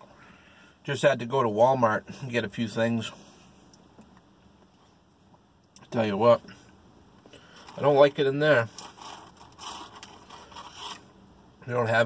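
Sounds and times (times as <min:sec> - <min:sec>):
close rustling and scraping: 0:07.4 - 0:11.2.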